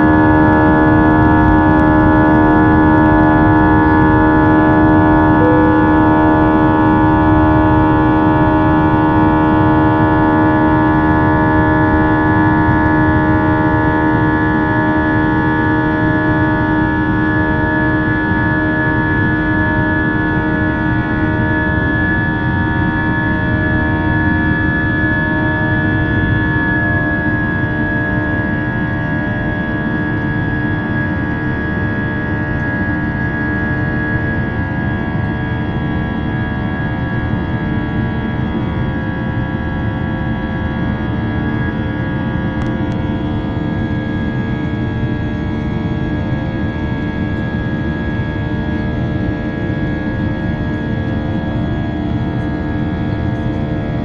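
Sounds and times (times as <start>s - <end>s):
jet engines heard inside cabin: 0.0s - 54.0s
high whining tones: 3.2s - 8.5s.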